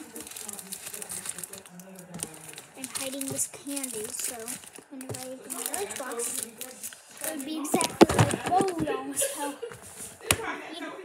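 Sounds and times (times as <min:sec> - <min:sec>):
plastic wrapper crinkling: 0:00.0 - 0:09.0.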